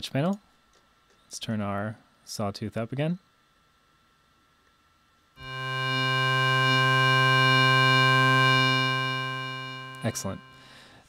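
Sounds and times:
buzzy synthesizer low note: 5.4 - 10.7.

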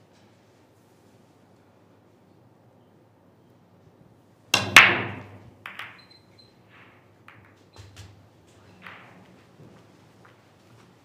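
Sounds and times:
cue ball smashing into racked balls: 4.6 - 6.0
cue striking cue ball: 4.6 - 6.0
billiard balls clattering: 4.6 - 6.1, 6.7 - 9.7.

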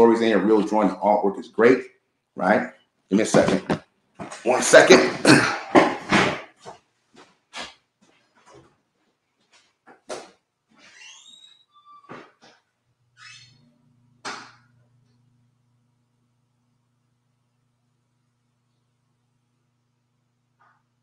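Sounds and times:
man clearing throat and coughing: 4.8 - 6.5
chair squeaks: 10.8 - 12.6, 13.2 - 13.6
faint low hum: 12.8 - 21.0.

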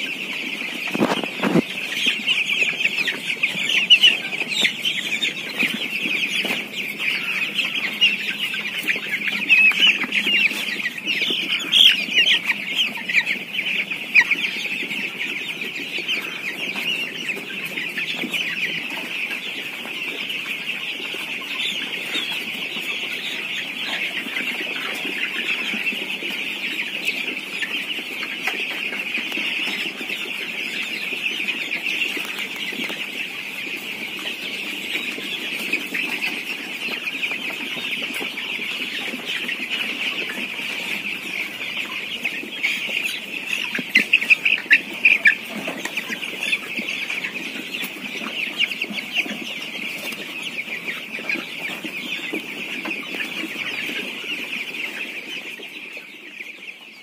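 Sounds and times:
chicks peeping: 0.0 - 57.0.

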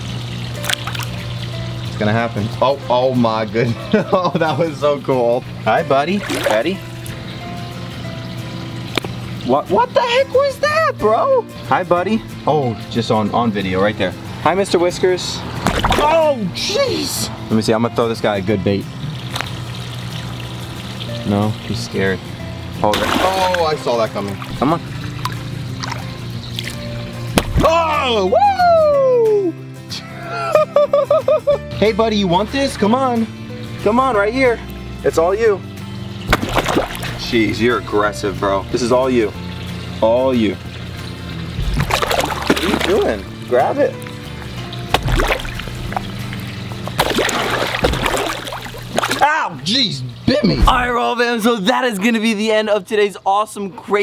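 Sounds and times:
water trickling into a pond: 0.0 - 29.5, 36.1 - 52.6
background music: 0.0 - 54.0
fish splashing in water: 0.5 - 1.5, 6.1 - 7.2, 15.4 - 16.2, 22.9 - 27.7, 36.2 - 37.2, 41.4 - 43.4, 44.0 - 49.4.

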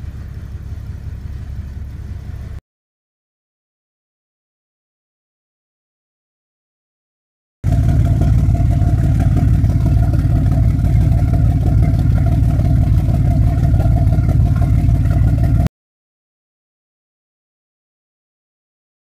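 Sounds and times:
diesel exhaust pulsing: 0.0 - 2.6, 7.6 - 15.7
cooling water discharging: 7.9 - 15.6.

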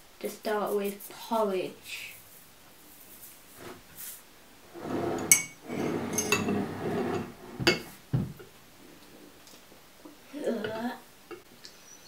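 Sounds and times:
metal spoon scraping in bowl: 4.8 - 7.4.

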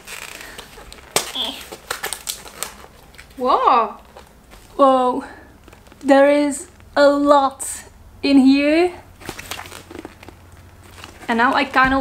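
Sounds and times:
shrink-wrap crackling and clicking: 0.0 - 3.4, 5.6 - 7.0, 9.2 - 12.0.

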